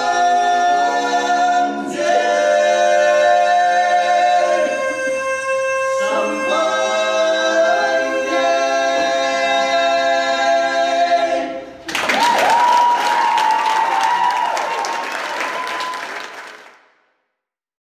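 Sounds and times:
barbershop quartet singing: 0.0s - 11.8s
applause: 11.8s - 17.0s.

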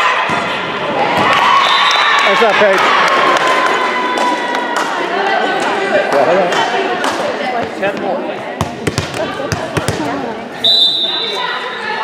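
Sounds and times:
voices echoing in a gymnasium: 0.0s - 12.0s
ball bouncing on wooden floor: 8.6s - 10.1s.

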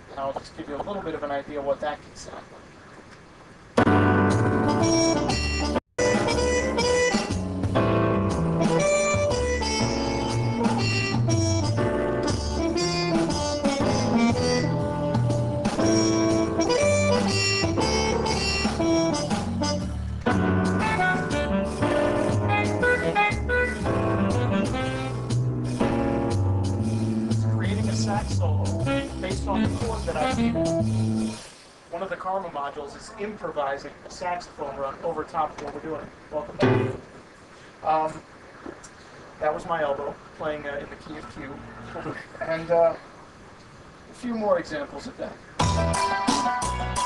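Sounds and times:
synthesizer groove: 3.8s - 31.5s
saxophone run: 20.8s - 25.4s.

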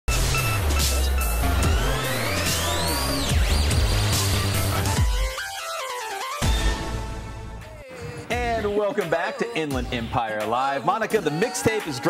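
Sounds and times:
rising synth sweep: 0.1s - 5.8s
electronic music with heavy bass beat: 0.1s - 12.0s.

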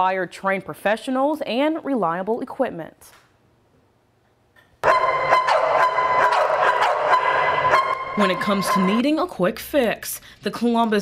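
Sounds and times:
many dogs barking: 4.8s - 9.0s.

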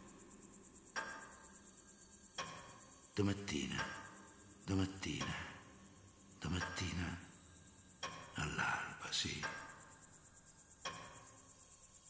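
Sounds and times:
high pulsing cricket-like chirr: 0.0s - 12.0s.

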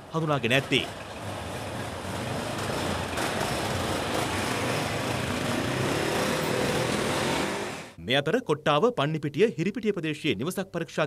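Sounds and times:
street noise: 0.0s - 8.0s
vehicle engines running: 0.0s - 8.0s.

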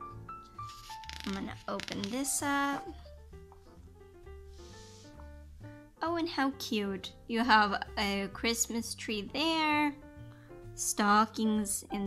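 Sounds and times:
soft background music: 0.0s - 12.0s
magazine page rustling: 0.4s - 3.8s.

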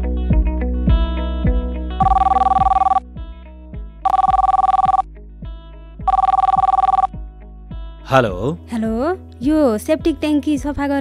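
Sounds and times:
phone ringing: 2.0s - 3.0s, 4.0s - 5.0s, 6.1s - 7.1s.

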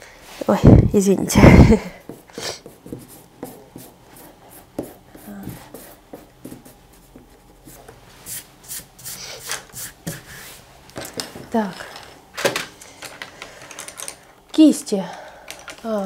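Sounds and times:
eraser rubbing on paper: 2.4s - 7.1s, 8.2s - 10.6s.

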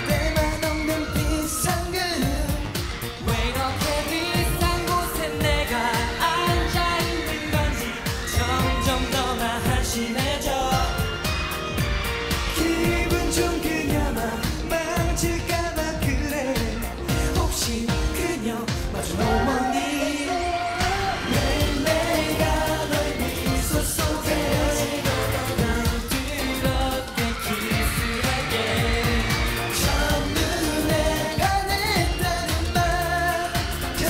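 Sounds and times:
men singing: 0.0s - 34.0s
steady pop beat: 0.0s - 34.0s.

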